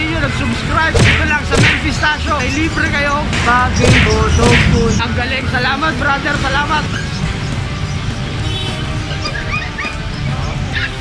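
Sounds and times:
background music: 0.0s - 11.0s
puppies whimpering and yipping: 6.7s - 8.0s, 8.9s - 11.0s.

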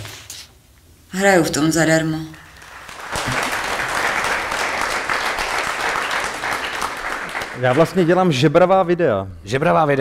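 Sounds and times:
audience applause: 2.5s - 8.4s.

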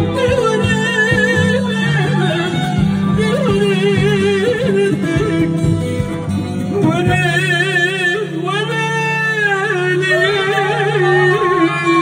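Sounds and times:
amplified band with drone and beat: 0.0s - 9.0s
man singing long wavering note: 6.8s - 12.0s.

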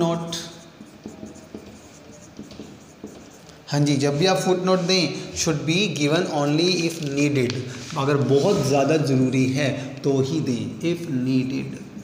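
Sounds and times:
marker writing on whiteboard: 0.0s - 9.2s.

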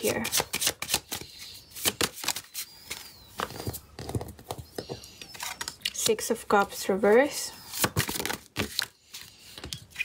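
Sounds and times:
cards being shuffled: 0.1s - 4.7s, 7.7s - 10.0s.

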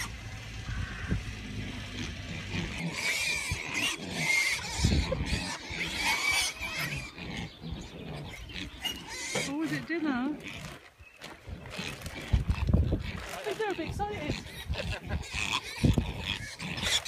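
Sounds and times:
high piglet squeals: 0.0s - 1.3s, 2.0s - 9.7s, 13.8s - 17.0s
pigs grunting: 0.0s - 17.0s.

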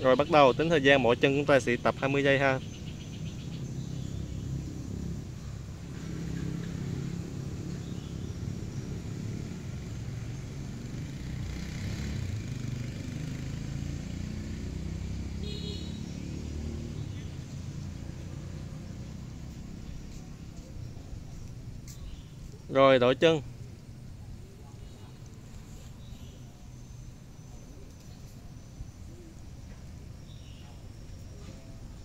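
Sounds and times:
distant road traffic: 0.0s - 32.0s.

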